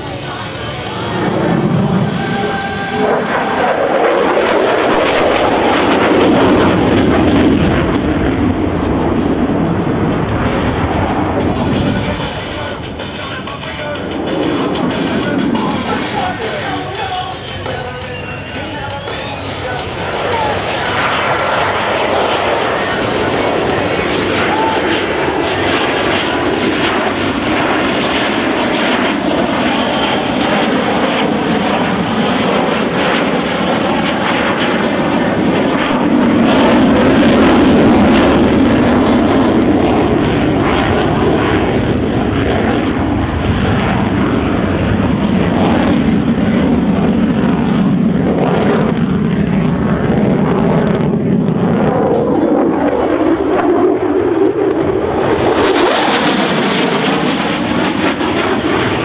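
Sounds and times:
jet engine roaring: 0:00.0 - 0:59.0.

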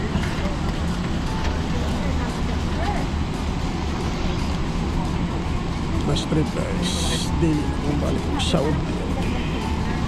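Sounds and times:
airliner cabin rumble: 0:00.0 - 0:10.0.

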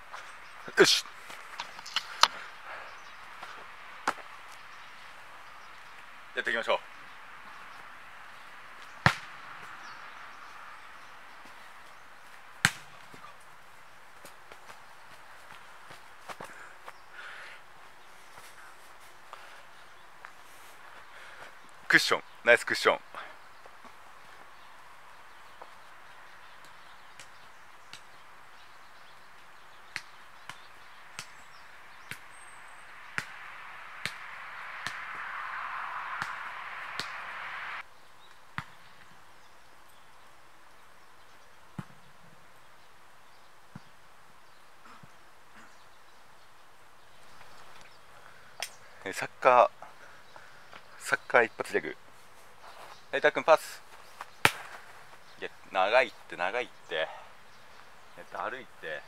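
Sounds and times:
soccer ball kicked: 0:08.8 - 0:09.8, 0:12.6 - 0:13.3, 0:29.9 - 0:32.4, 0:33.0 - 0:35.3, 0:36.1 - 0:37.3, 0:54.3 - 0:54.9
ball kicks: 0:09.0 - 0:09.7, 0:12.6 - 0:13.3, 0:34.0 - 0:35.2, 0:36.2 - 0:37.2, 0:54.4 - 0:54.9.

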